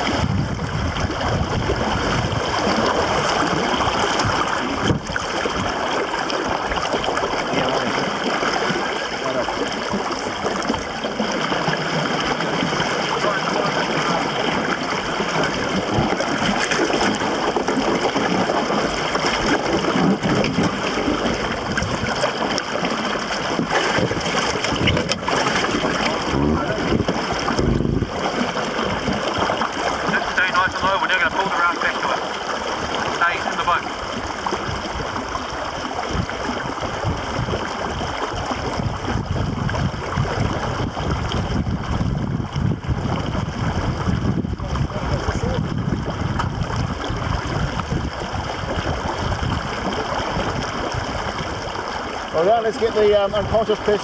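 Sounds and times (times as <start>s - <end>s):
water sloshing around car: 0.0s - 54.0s.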